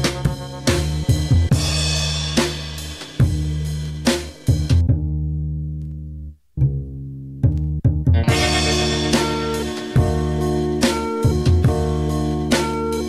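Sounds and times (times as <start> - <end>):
bass: 0.0 - 13.0
drum beat: 8.2 - 11.9
held low chord: 8.2 - 12.5.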